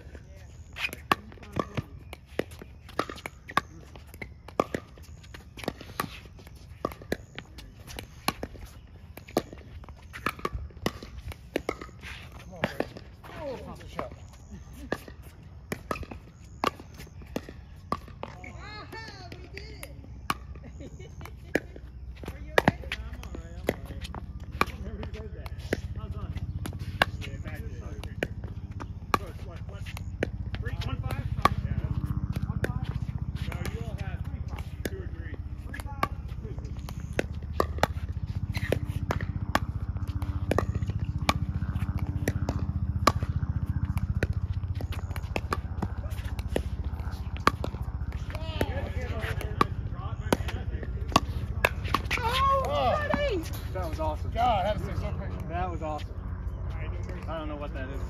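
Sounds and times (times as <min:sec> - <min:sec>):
paddles hitting plastic ball: 0:21.2 - 0:53.6.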